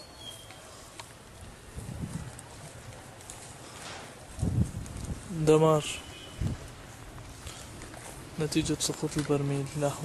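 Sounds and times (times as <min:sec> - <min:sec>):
footsteps on dry ground: 0:00.2 - 0:10.0
faint clicks and rustle: 0:00.3 - 0:05.3, 0:06.4 - 0:10.0.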